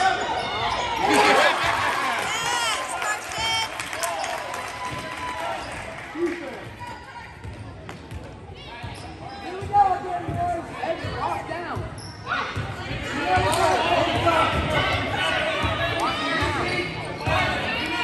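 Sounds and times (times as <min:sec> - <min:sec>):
echoing voices in a hall: 0:00.0 - 0:18.0.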